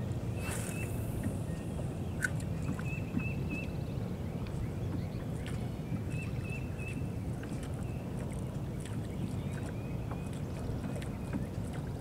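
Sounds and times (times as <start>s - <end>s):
water and wind rumble: 0.0s - 12.0s.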